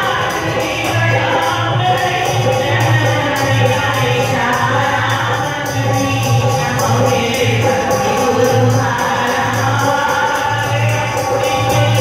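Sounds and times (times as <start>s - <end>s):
harmonium: 0.0s - 12.0s
percussion beat: 0.0s - 12.0s
women singing in unison: 0.0s - 12.0s.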